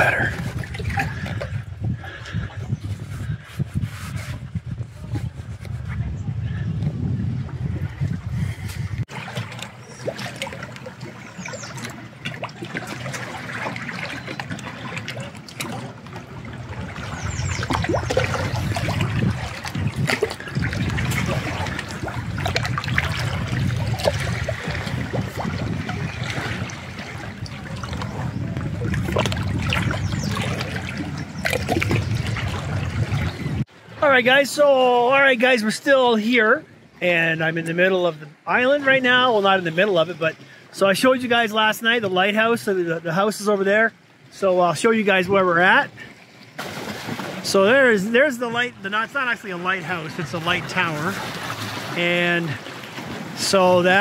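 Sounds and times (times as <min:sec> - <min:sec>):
water lapping among rocks: 0:00.0 - 0:34.0, 0:45.1 - 0:54.0.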